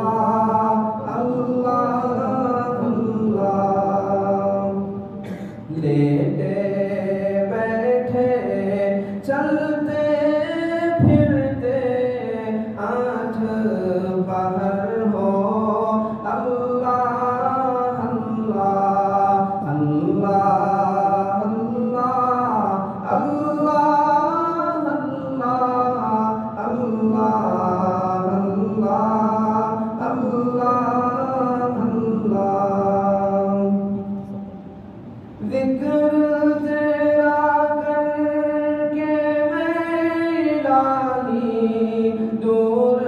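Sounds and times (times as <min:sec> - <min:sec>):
man chanting unaccompanied: 0:00.0 - 0:34.5, 0:35.4 - 0:43.0.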